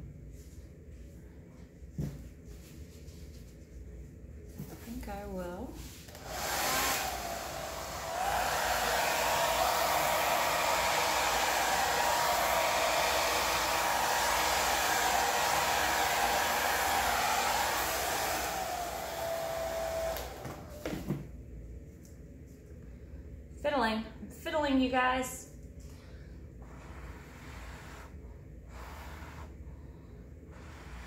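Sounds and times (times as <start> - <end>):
hair dryer blowing: 6.1 - 21.3, 26.6 - 29.6, 30.5 - 31.0.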